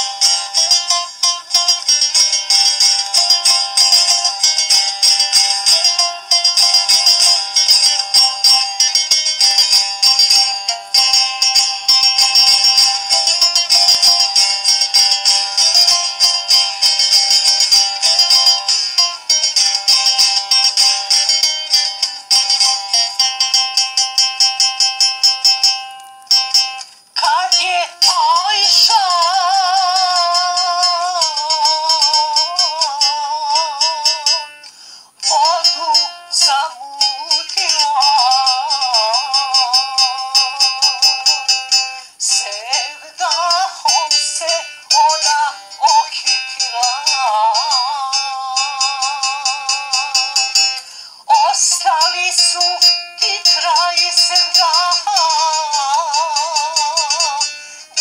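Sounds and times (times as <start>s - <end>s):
person singing with vibrato: 0.0s - 25.1s, 27.2s - 58.0s
instrumental held notes: 0.0s - 58.0s
plucked notes beat: 0.0s - 58.0s.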